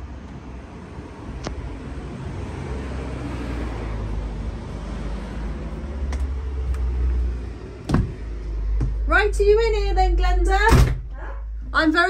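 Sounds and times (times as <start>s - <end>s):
door thumping open: 7.8s - 9.0s, 10.6s - 11.2s
low steady rumble: 7.9s - 12.0s.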